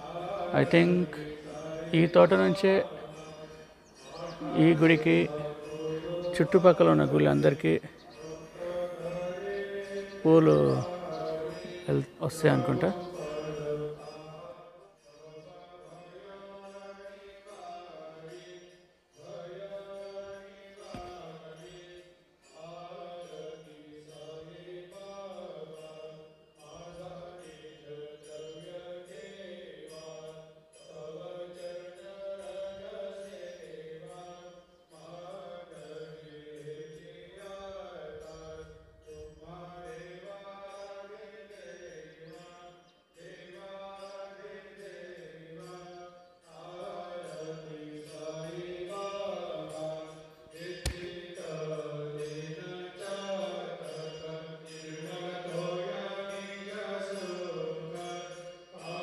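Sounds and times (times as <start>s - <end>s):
voice chanting a mantra: 0.0s - 18.6s, 19.2s - 30.3s, 30.9s - 59.0s
sharp click: 50.8s - 51.2s.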